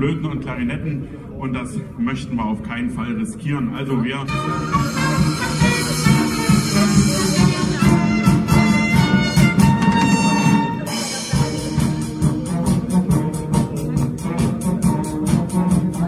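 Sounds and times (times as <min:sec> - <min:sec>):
steady drum beat: 0:04.3 - 0:16.0
wind band playing: 0:04.3 - 0:16.0.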